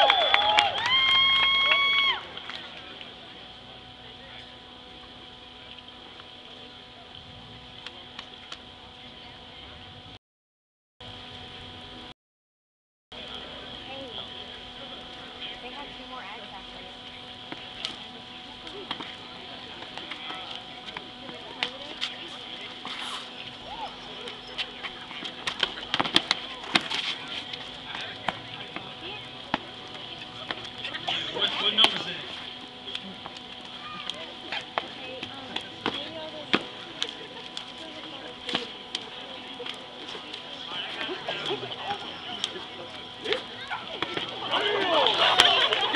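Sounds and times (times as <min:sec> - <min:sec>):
crowd chatter: 0:00.0 - 0:10.2, 0:13.1 - 0:45.9
steady hum: 0:00.0 - 0:10.2, 0:11.0 - 0:12.2, 0:13.1 - 0:45.9.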